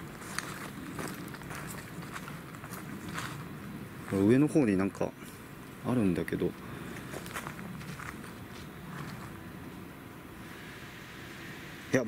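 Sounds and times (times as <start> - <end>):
footsteps walking: 0.0 - 4.5, 6.8 - 9.8
low steady background hiss: 0.0 - 12.0.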